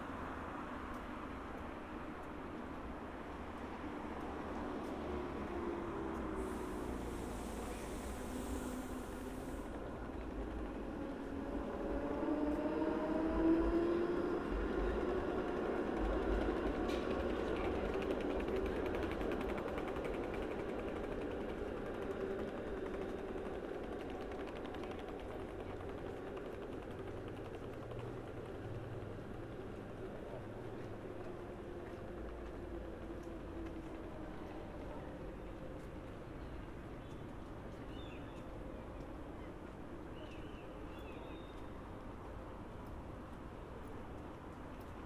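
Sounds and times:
tram drive whining: 0:00.0 - 0:37.8
tram low rumble: 0:00.0 - 0:45.0.

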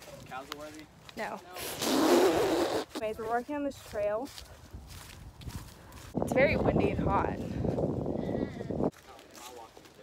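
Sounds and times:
light footstep clicks: 0:00.2 - 0:01.4
wind buffeting microphone: 0:04.3 - 0:09.0.

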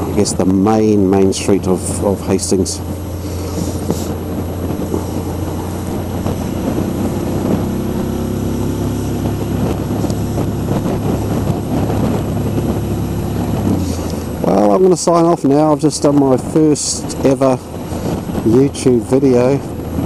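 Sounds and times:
motorcycle engine running: 0:00.0 - 0:20.0
wind and road noise: 0:00.0 - 0:20.0.

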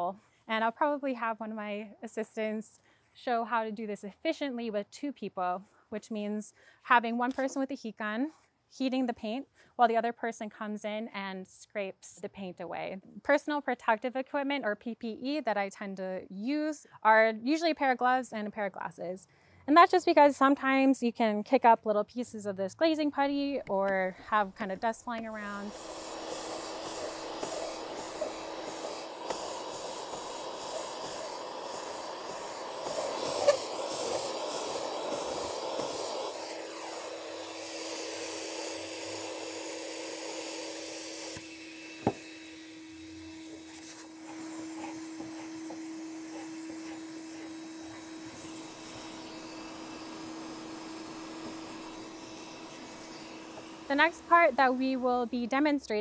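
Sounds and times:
heat gun blowing: 0:23.6 - 0:56.0
paint scraping off wood: 0:43.5 - 0:48.2.

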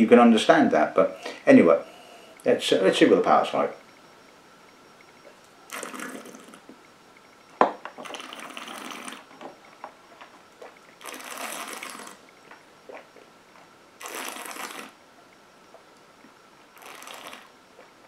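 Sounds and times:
person blowing hissy breaths: 0:01.2 - 0:02.4.

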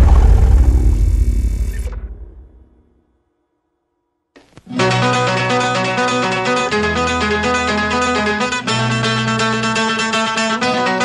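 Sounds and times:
loud low rumbling: 0:00.0 - 0:03.0.

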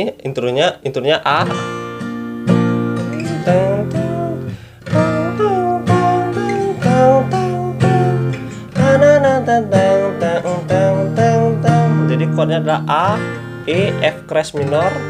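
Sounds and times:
acoustic guitar strumming: 0:01.3 - 0:15.0
man singing: 0:03.0 - 0:15.0.

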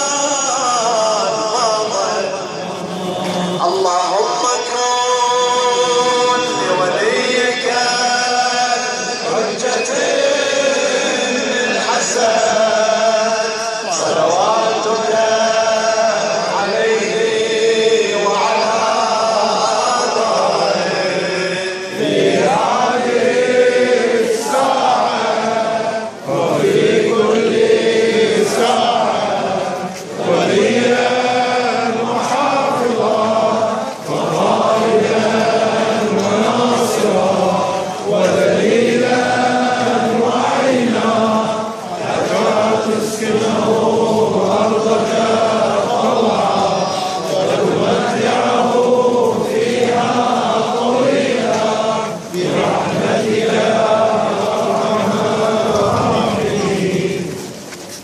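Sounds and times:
crowd chanting in unison: 0:00.0 - 0:58.0.

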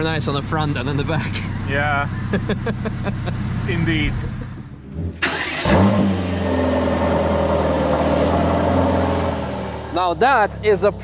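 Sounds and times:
car engine starting and idling: 0:00.0 - 0:11.0.

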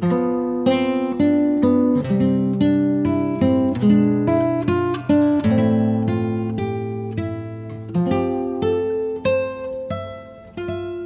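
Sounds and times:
acoustic guitar melody: 0:00.0 - 0:11.0.

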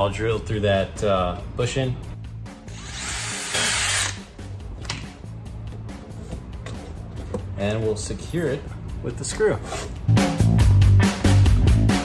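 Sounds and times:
background music: 0:00.0 - 0:12.0
cordless drill boring metal: 0:02.7 - 0:04.2.

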